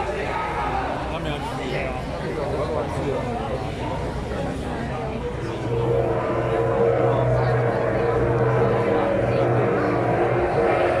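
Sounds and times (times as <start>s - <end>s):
street crowd noise: 0.0s - 11.0s
loud steady droning tone: 1.8s - 11.0s.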